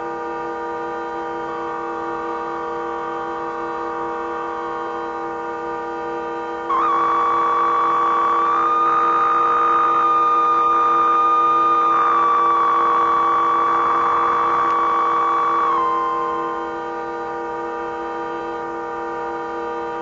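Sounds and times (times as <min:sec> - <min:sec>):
low drone: 0:06.7 - 0:16.9
held synthesized tone: 0:06.7 - 0:17.0.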